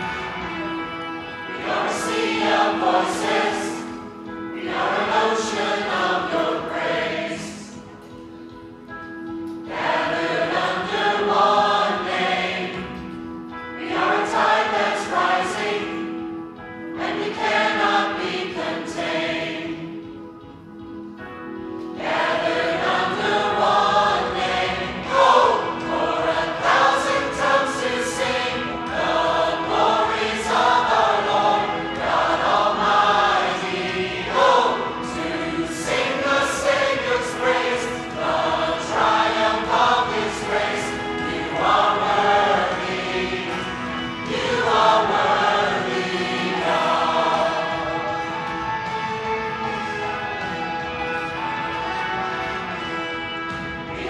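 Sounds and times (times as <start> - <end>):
mixed choir singing: 0.0 - 7.9, 9.6 - 20.2, 21.8 - 52.8, 53.5 - 54.0.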